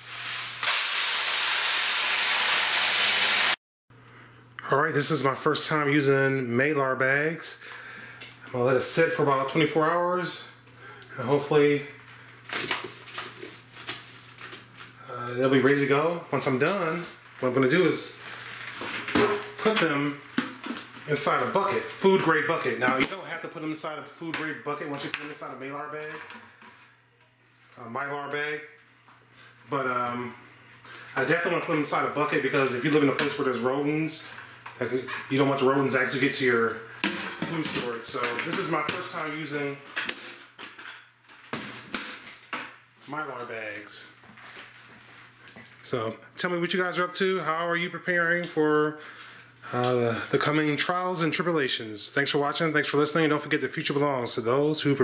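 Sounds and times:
plastic bags crinkling: 12.4 - 14.9.

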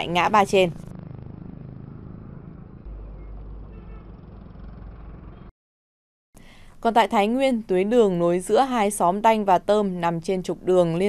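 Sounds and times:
motorbike engines: 0.0 - 5.5
trucks passing: 0.0 - 5.5.

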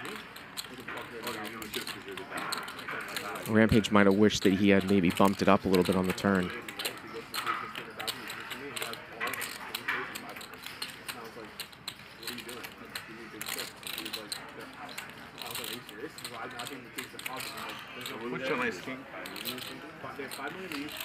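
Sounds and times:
faint table talk: 0.0 - 21.0
poker chips clicking: 0.0 - 21.0.

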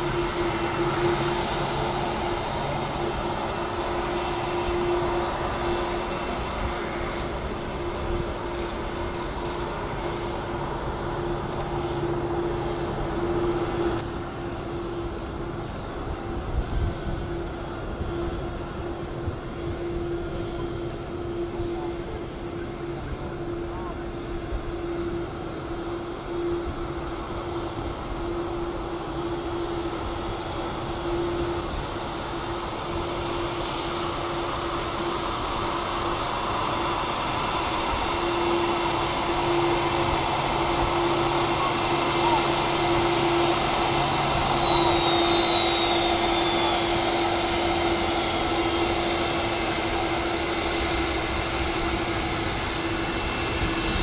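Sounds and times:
jet engines whining while taxiing: 0.0 - 54.0.

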